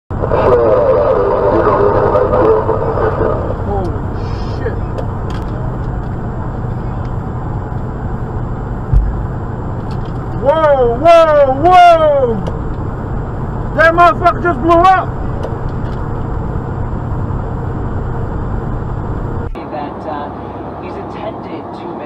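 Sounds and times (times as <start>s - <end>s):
road and engine drone: 0.1s - 22.0s
low thump: 8.9s - 9.3s.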